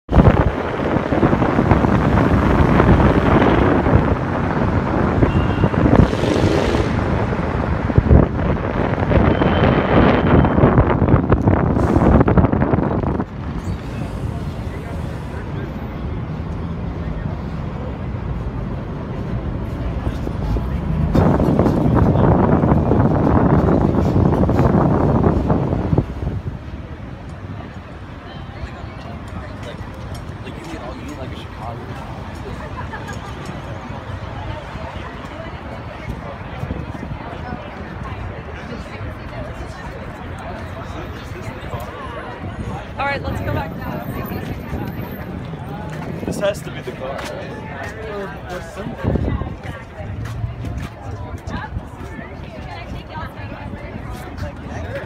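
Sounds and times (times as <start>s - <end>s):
traffic and street noise: 0.0s - 55.0s
wind buffeting microphone: 0.1s - 55.0s.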